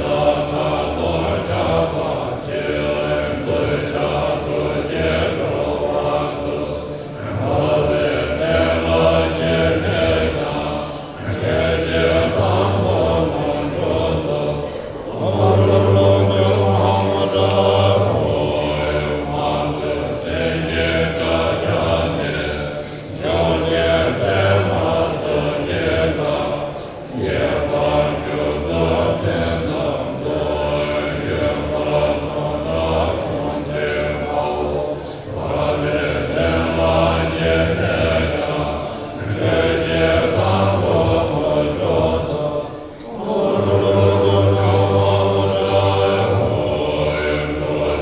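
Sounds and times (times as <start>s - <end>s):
monks chanting in deep voices: 0.0s - 48.0s.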